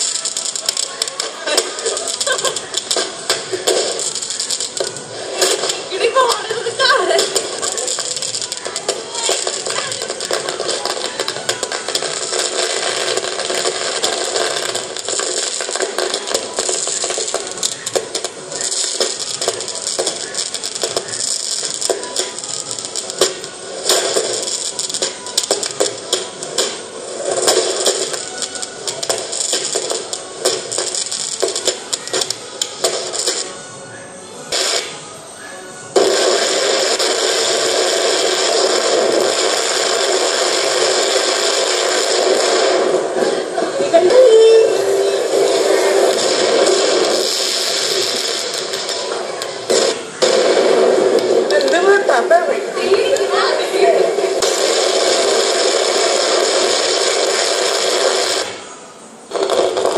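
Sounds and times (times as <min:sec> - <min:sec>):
fireworks cracking and popping: 0:00.0 - 0:59.9
loud steady hiss: 0:00.0 - 0:59.9.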